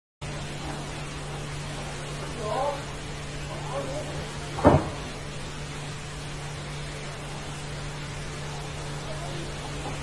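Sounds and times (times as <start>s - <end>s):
low hum and hiss: 0.2s - 10.0s
short thump: 4.6s - 5.1s.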